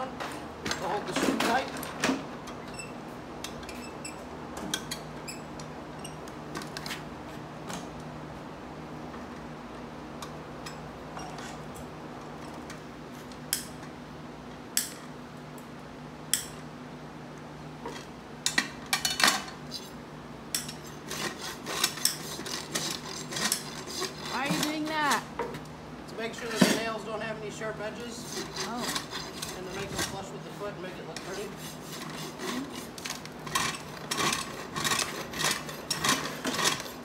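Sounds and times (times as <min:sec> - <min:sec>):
metal clinking and scraping on hoof: 0:11.1 - 0:11.8, 0:20.6 - 0:25.2, 0:28.1 - 0:30.3, 0:31.1 - 0:37.0.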